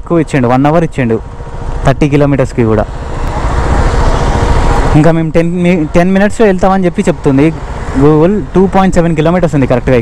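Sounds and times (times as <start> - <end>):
vehicles passing: 0.0 - 10.0.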